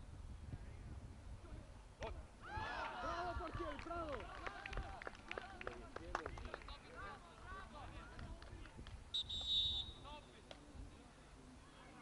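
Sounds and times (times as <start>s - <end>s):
players shouting and cheering: 2.4s - 5.6s.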